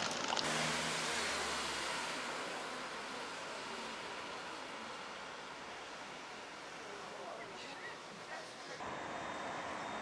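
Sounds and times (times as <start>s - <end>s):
car passing: 0.3s - 7.3s.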